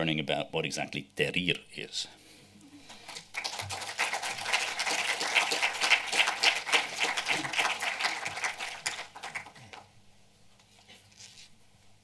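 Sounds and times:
audience applauding: 2.9s - 9.9s.

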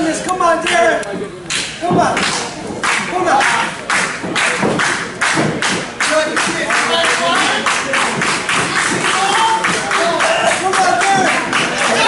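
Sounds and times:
voices: 0.0s - 12.0s
audience clapping in rhythm: 1.5s - 12.0s.

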